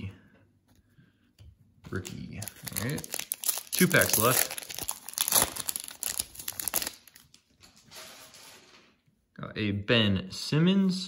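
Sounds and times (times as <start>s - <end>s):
plastic wrapper crinkling: 1.9s - 7.6s.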